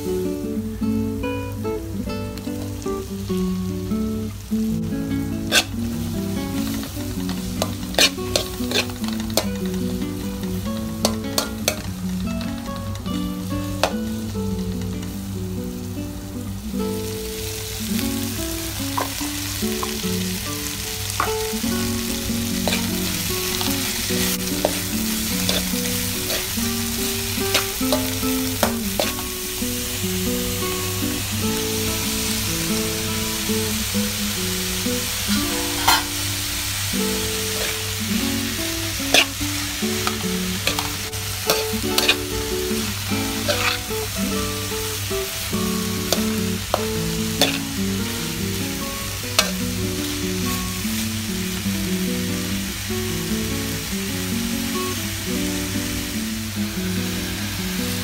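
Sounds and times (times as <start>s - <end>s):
vegetables sizzling in a metal pan: 0.0s - 58.0s
metal spatula scraping a pan: 5.4s - 5.8s, 6.6s - 9.8s, 11.0s - 12.5s, 22.6s - 29.3s, 35.5s - 36.2s, 37.5s - 37.9s, 38.9s - 42.4s, 43.3s - 44.1s, 46.1s - 47.7s, 49.4s - 49.6s.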